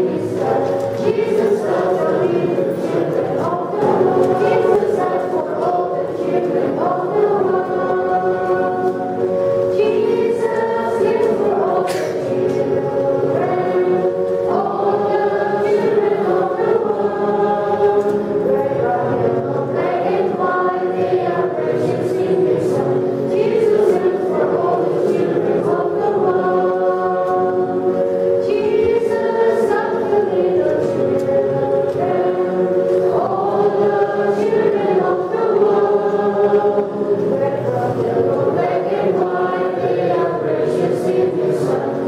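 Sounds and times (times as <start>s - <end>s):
congregation singing a hymn: 0.0s - 42.0s.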